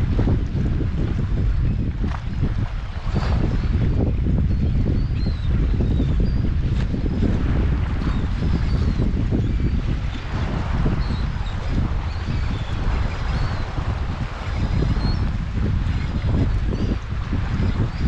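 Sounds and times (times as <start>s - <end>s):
strong wind buffeting microphone: 0.0s - 18.0s
seabirds calling: 8.0s - 18.0s.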